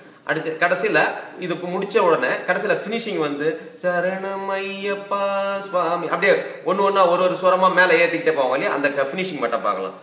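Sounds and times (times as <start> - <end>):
man singing a sustained syllable: 3.8 - 6.1.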